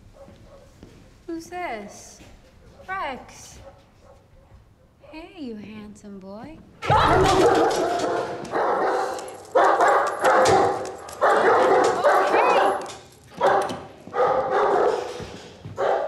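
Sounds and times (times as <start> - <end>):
dog barking: 0.1 - 1.1, 2.4 - 2.9, 3.6 - 5.0, 6.9 - 16.0.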